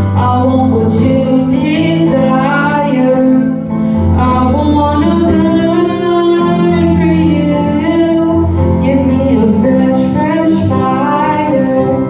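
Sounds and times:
keyboard accompaniment: 0.0s - 12.0s
woman singing: 0.0s - 12.0s.

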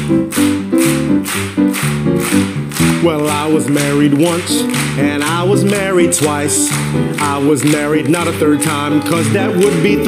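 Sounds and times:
band playing country music: 0.4s - 10.0s.

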